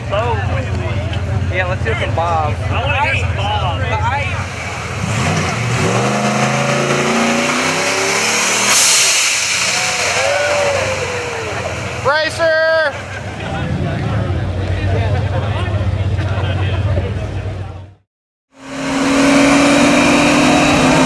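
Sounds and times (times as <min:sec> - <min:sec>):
crowd voices: 0:00.0 - 0:05.6, 0:09.5 - 0:18.0
car engine idling: 0:00.0 - 0:18.0
brief hiss: 0:08.6 - 0:10.4
person shouting: 0:09.8 - 0:11.6.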